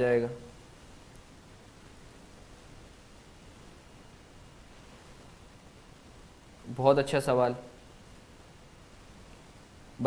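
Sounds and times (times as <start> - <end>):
faint room tone hiss: 0.0 - 10.0
man speaking: 6.7 - 7.8.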